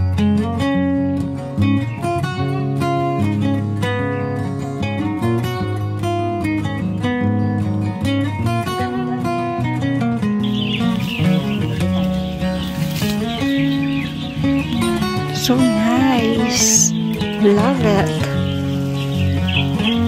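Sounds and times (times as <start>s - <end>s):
acoustic guitar music: 0.0s - 20.0s
birds chirping: 1.6s - 20.0s.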